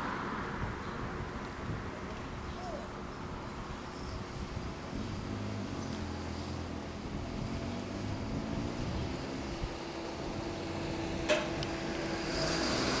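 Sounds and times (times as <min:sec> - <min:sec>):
street traffic noise: 0:00.0 - 0:13.0
motorcycle pulling away: 0:04.9 - 0:13.0.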